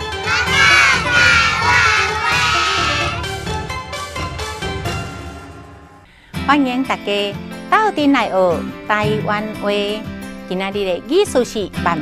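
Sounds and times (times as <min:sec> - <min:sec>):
upbeat jingle music: 0:00.0 - 0:08.2
children shouting: 0:00.2 - 0:03.2.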